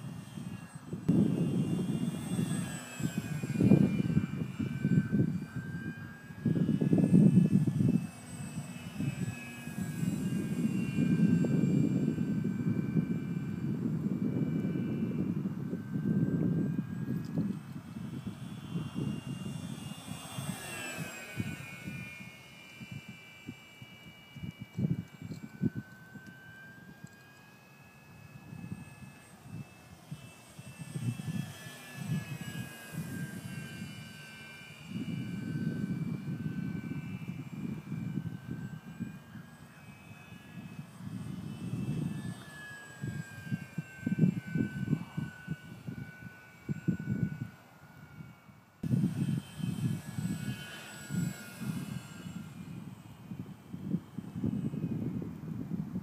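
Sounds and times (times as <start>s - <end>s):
model plane motor whine: 0.0s - 56.0s
wind rumble on microphone: 0.0s - 56.0s.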